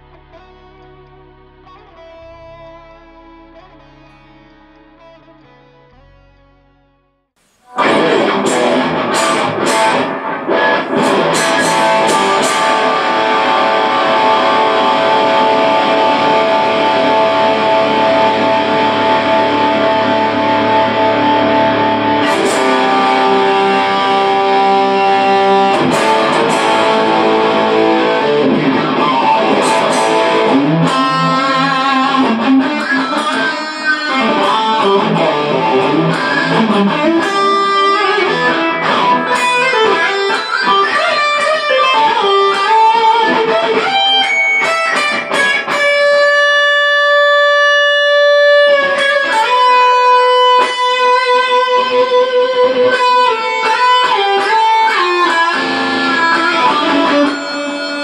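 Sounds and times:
electric guitar lead: 0.0 - 58.0.

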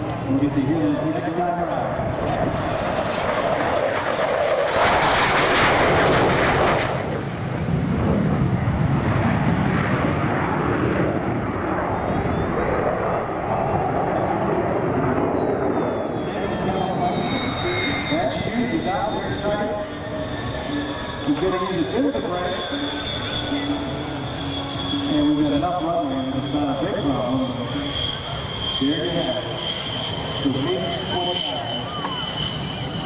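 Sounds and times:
jet engine roar: 0.0 - 33.0
high turbine whistle: 11.3 - 33.0.

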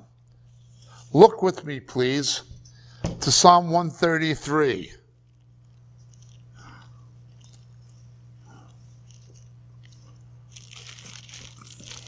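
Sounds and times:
steady low hum: 0.0 - 12.0
thin pages rustling: 9.0 - 12.0.

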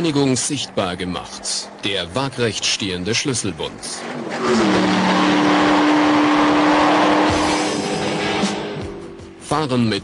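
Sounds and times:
car engine running at high revs: 3.8 - 9.4.

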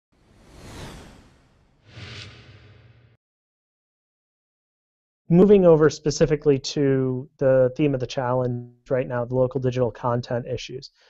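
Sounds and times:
whoosh sound effects: 0.2 - 3.2.

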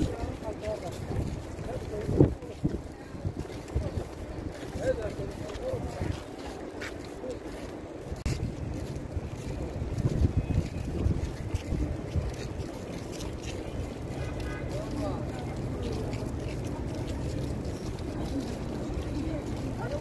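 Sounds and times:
wind buffeting microphone: 0.0 - 6.2, 7.9 - 20.0
faint voices of passers-by: 0.0 - 20.0.

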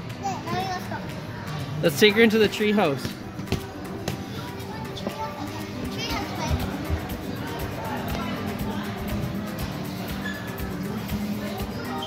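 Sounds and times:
background music: 0.0 - 12.0
children playing and calling out: 0.1 - 1.5, 4.2 - 9.0.

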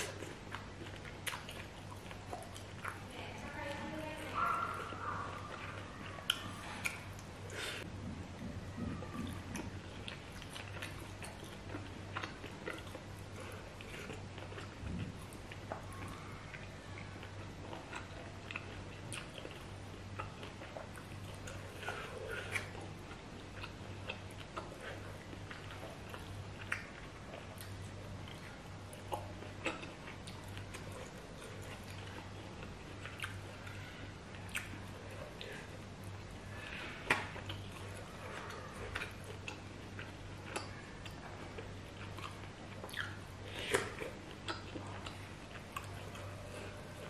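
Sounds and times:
person chewing: 0.0 - 3.1, 4.2 - 7.9, 8.7 - 47.0.

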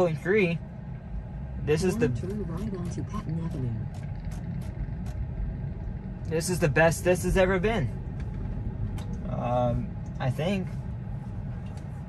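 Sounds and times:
road and tyre rumble: 0.0 - 12.0.

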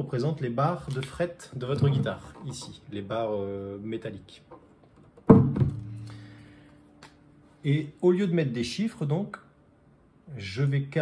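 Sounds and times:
guitar body thump: 5.2 - 6.0.

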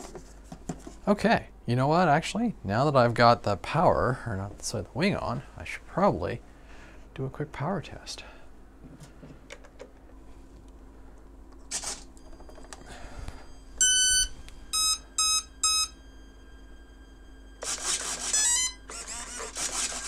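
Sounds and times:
speed controller beeps: 13.8 - 16.0.

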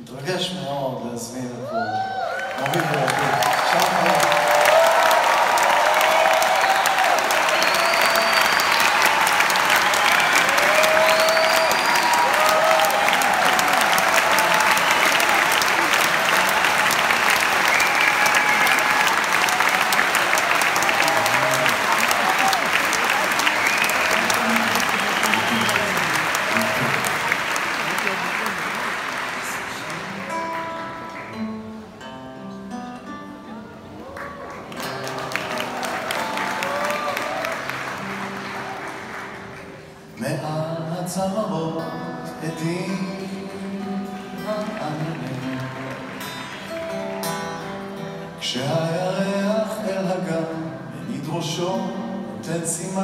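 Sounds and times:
cheers and whistles: 1.7 - 27.5, 34.0 - 39.1
audience applauding: 1.8 - 31.6, 34.0 - 40.1, 42.7 - 49.9.

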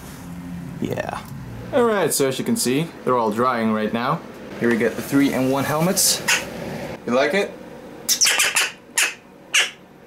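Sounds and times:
crow squawking: 6.3 - 6.5, 8.1 - 9.8.

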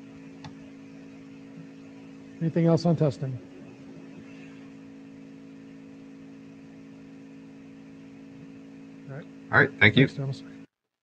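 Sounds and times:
low electrical hum: 0.0 - 10.7.

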